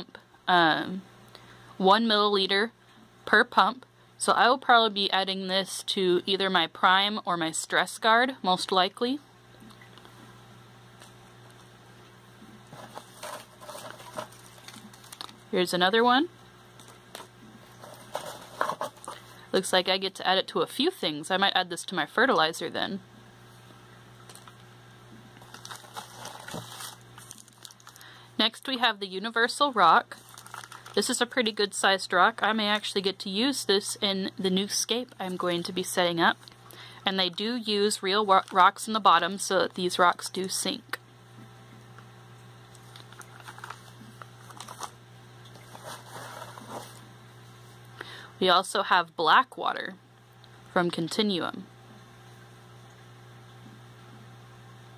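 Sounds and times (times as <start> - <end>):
steady low hum: 0.0 - 54.9
shredded paper rustling: 12.7 - 15.4, 16.8 - 19.2, 25.4 - 28.1, 30.2 - 31.1, 42.8 - 45.0, 45.6 - 47.0.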